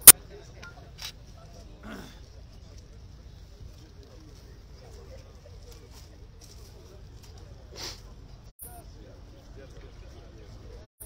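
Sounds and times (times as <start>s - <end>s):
outdoor background noise: 0.0s - 10.9s
murmur of a voice: 0.2s - 10.9s.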